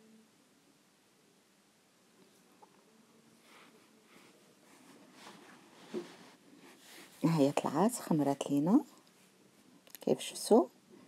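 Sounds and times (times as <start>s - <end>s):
faint rustling of cloth: 2.1s - 11.0s.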